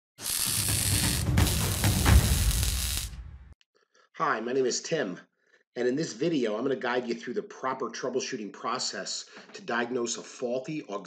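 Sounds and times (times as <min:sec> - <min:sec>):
heavy low beats: 0:00.7 - 0:03.5.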